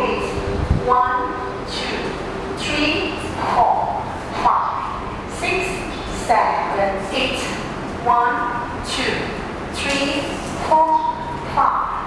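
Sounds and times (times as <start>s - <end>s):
woman counting aloud: 0.0s - 12.0s.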